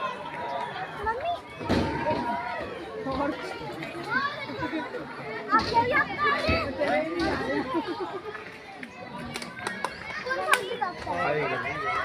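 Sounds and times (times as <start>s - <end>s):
people and children talking: 0.0s - 12.0s.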